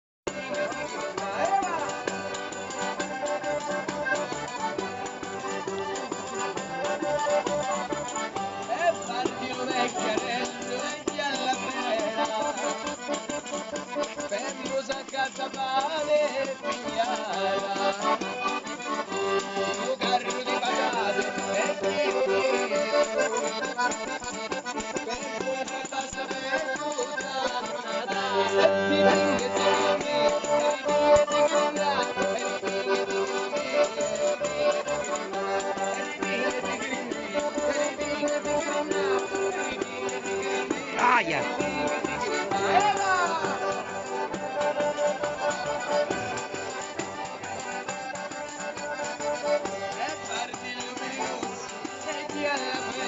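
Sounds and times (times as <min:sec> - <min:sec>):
button accordion folk tune: 0:00.0 - 0:53.0
rhythmic percussion beat: 0:00.3 - 0:53.0.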